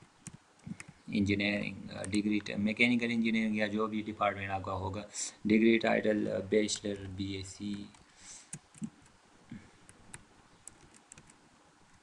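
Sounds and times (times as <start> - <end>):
faint keyboard keystrokes: 9.8 - 12.0.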